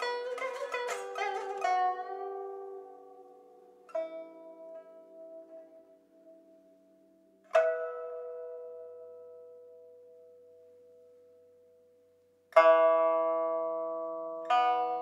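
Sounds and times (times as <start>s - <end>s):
plucked string chords: 0.0s - 15.0s.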